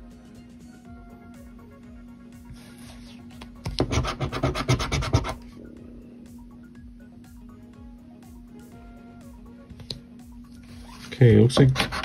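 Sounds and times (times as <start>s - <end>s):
quiet background music: 0.0s - 12.0s
coin scraping scratch ticket: 11.6s - 12.0s.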